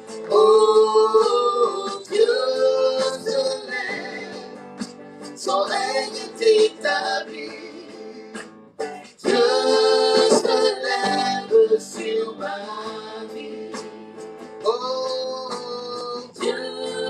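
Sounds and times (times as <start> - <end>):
man singing lead: 0.0 - 4.7, 5.3 - 8.4, 9.2 - 17.0
instrumental accompaniment: 0.0 - 17.0
women singing backing vocals: 0.3 - 4.6, 5.4 - 8.3, 9.2 - 14.1, 16.2 - 17.0.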